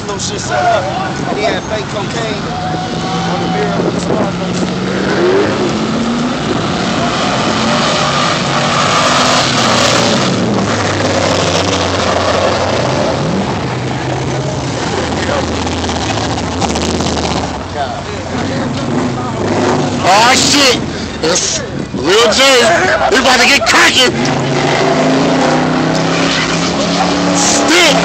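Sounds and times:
car engines revving: 0.0s - 28.0s.

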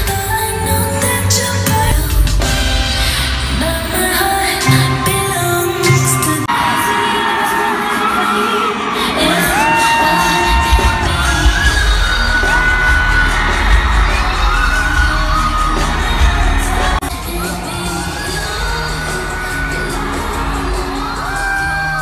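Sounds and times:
backing track with heavy bass: 0.0s - 6.5s, 10.3s - 22.0s
crowd screaming and cheering: 0.0s - 22.0s.

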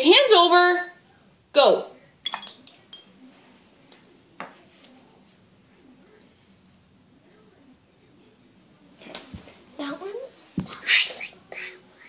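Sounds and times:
candies clinking on ceramic bowls: 2.2s - 3.2s.

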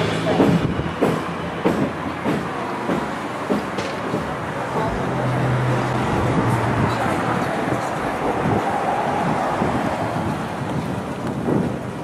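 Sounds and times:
passing cars traffic noise: 0.0s - 12.0s
low engine hum: 4.6s - 11.4s.

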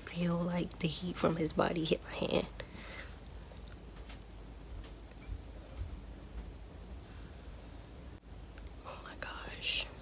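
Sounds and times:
woman whispering: 8.8s - 10.0s.

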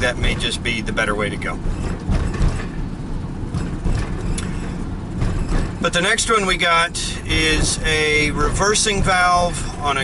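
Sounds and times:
faint rattles: 0.0s - 10.0s
road and engine rumble: 0.0s - 10.0s.

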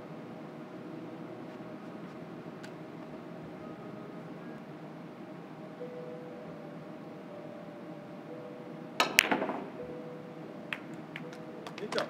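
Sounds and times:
low hall hum: 0.0s - 12.0s
cue tip clicking on ball: 9.0s - 9.7s
billiard balls clicking together: 9.0s - 9.8s, 10.7s - 12.0s.

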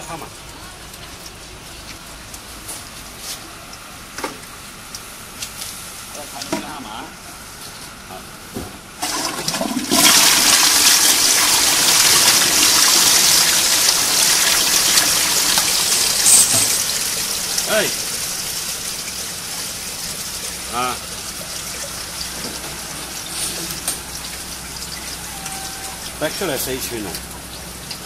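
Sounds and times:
toilet flushing: 9.0s - 28.0s.

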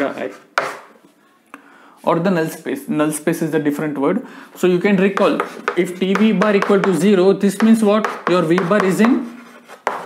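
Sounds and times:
writing stroke on board: 8.0s - 10.0s.

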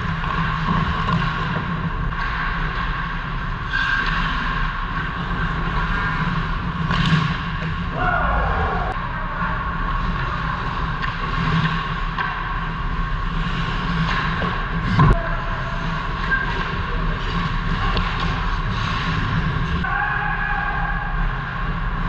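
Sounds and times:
arena noise rush: 4.4s - 22.0s.

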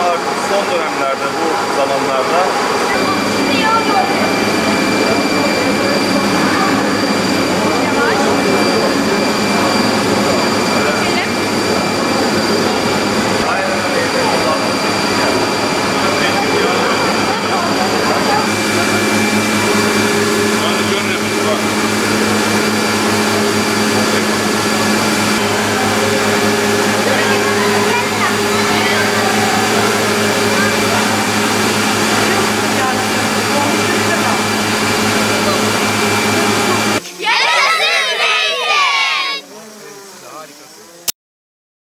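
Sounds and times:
children chattering: 0.0s - 40.9s
burst of voices: 0.0s - 41.0s
mill machinery humming: 0.0s - 41.1s.

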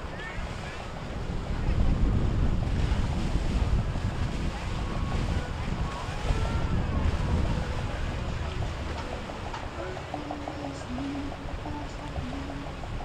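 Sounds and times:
boat motor rumble: 0.0s - 13.0s
water wash from boat: 0.0s - 13.0s
wind buffeting microphone: 0.0s - 13.0s.

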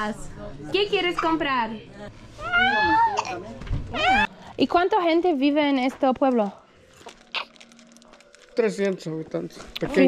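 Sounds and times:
child squealing: 2.4s - 4.3s.

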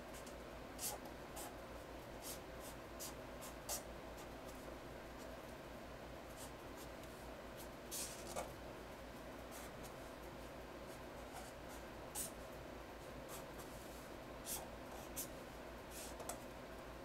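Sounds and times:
marker scratching on paper: 0.2s - 1.6s, 2.2s - 4.6s.

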